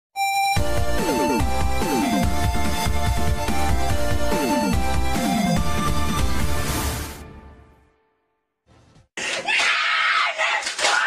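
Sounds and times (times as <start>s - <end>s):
person screaming harshly: 9.2s - 11.0s.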